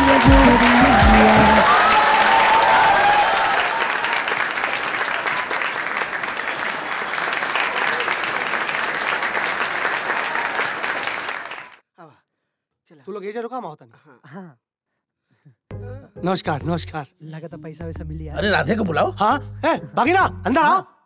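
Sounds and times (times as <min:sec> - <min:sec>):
audience clapping: 0:00.0 - 0:11.8.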